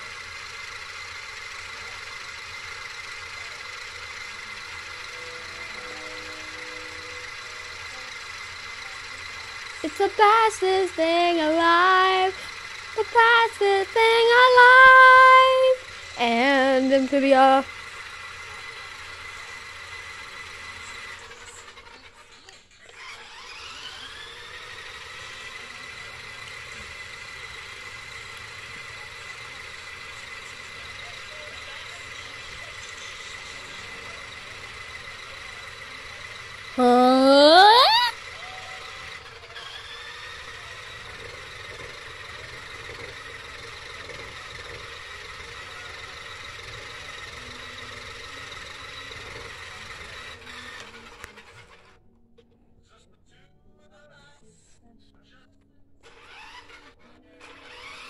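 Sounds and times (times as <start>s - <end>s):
toy electric motor whining: 0.0s - 52.0s, 56.0s - 58.0s.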